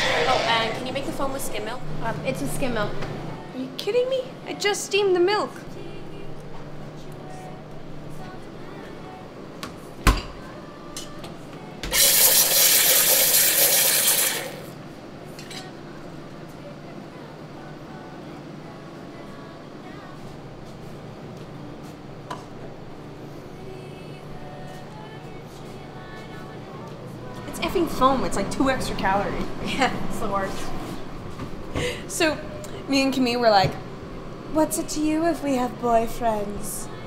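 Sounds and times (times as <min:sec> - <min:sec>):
low steady hum: 0:00.0 - 0:11.9
espresso steam wand hissing: 0:12.0 - 0:14.6.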